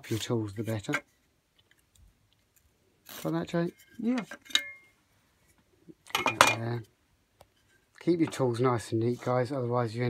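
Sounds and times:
metal blade clinking on wood: 0:03.8 - 0:04.9.

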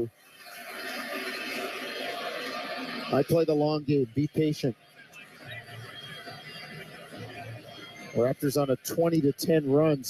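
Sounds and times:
radio sports broadcast: 0:00.7 - 0:10.0
faint murmur of voices: 0:01.4 - 0:10.0.

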